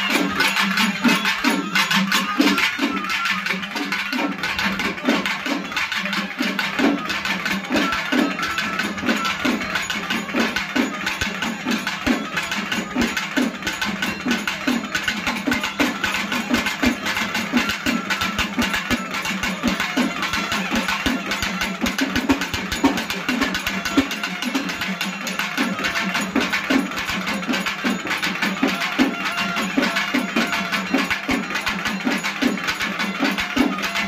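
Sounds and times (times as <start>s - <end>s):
festival drums driving rhythm: 0.0s - 34.0s.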